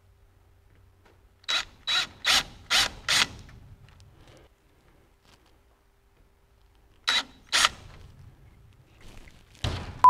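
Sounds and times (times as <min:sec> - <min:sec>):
cordless drill drilling metal: 0:01.5 - 0:03.4, 0:07.1 - 0:07.8.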